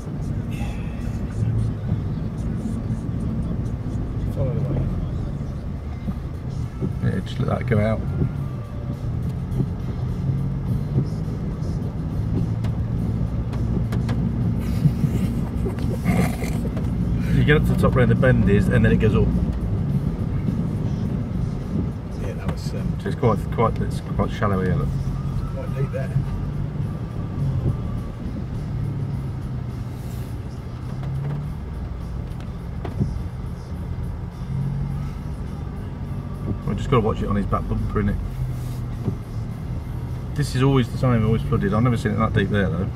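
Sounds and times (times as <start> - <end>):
engine running at low speed: 0.0 - 42.9
water washing and tyre noise: 0.0 - 42.9.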